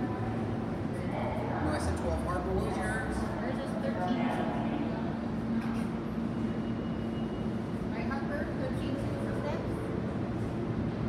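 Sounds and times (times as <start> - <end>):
subway train humming: 0.0 - 11.0.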